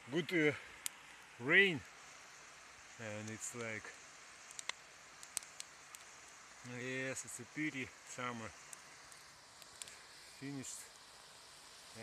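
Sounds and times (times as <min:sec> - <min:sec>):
wind and water hiss: 0:00.0 - 0:12.0
faint sharp clicks: 0:04.4 - 0:06.1, 0:08.7 - 0:10.0.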